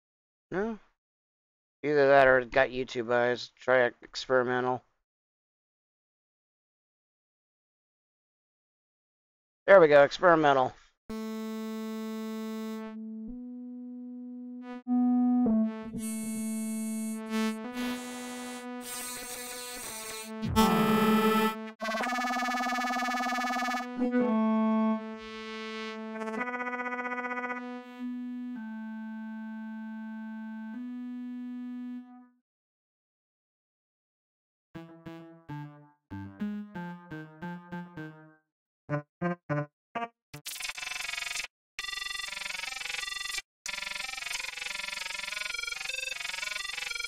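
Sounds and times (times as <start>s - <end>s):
distorted synthesizer note: 14.1s - 24.1s.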